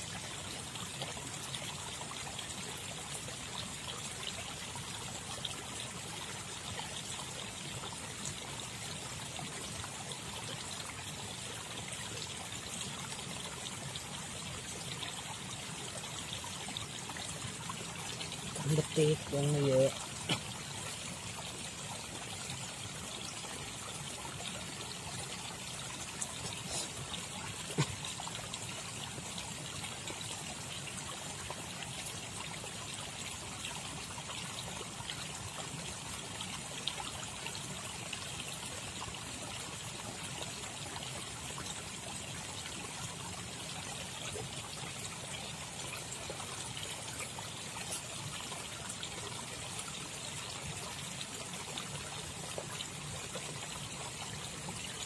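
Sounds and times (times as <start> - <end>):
river water trickling: 0.0 - 55.0.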